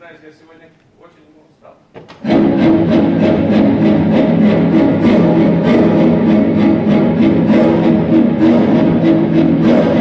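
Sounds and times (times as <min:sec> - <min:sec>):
orchestral music with strings: 0:02.2 - 0:10.0.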